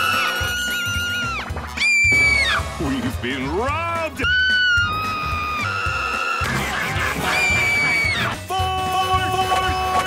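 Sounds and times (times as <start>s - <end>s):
background music: 0.0s - 10.0s
cartoon man screaming: 4.1s - 6.4s.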